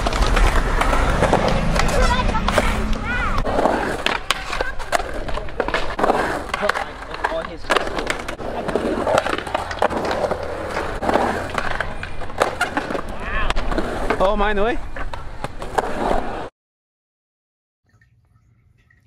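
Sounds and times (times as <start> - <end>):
skateboard grinding on metal rail: 0.0 - 14.2
skateboard clacking on ground: 0.0 - 16.0
skateboard rolling on concrete: 0.0 - 16.5.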